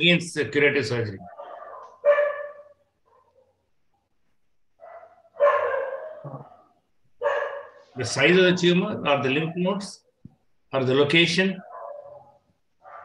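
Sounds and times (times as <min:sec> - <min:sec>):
dog barking: 0:01.2 - 0:03.7, 0:04.8 - 0:08.0, 0:11.6 - 0:13.0.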